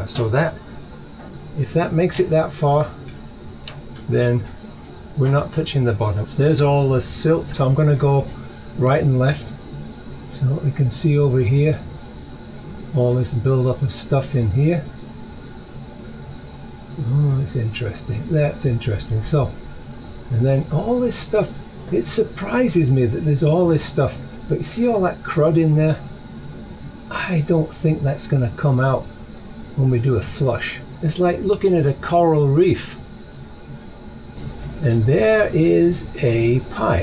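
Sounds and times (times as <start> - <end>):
room tone hiss: 0.0 - 37.0
man speaking: 17.0 - 19.6, 27.1 - 29.1, 34.8 - 37.0.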